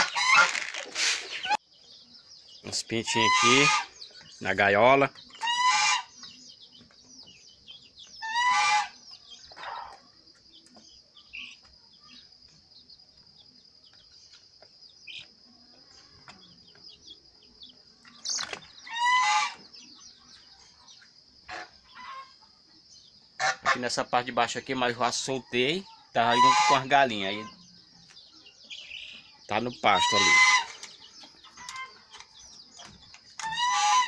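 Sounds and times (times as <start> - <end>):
chick peeps: 0.0 - 34.0
chickens calling: 0.0 - 34.0.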